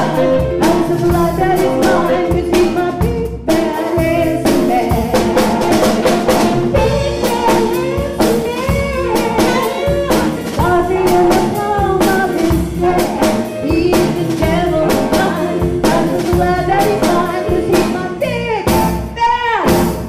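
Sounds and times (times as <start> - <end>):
saxophone: 0.0 - 19.8
woman singing: 0.0 - 19.9
live band playing bluesy jazz: 0.0 - 20.0.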